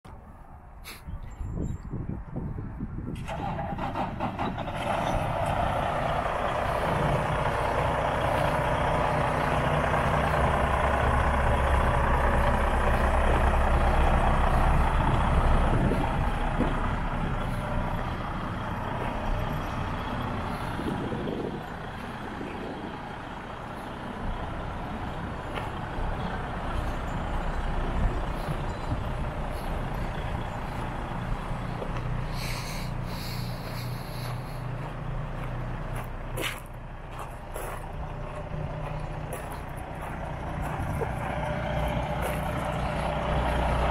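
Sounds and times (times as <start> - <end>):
diesel truck engine idling: 2.4 - 43.9.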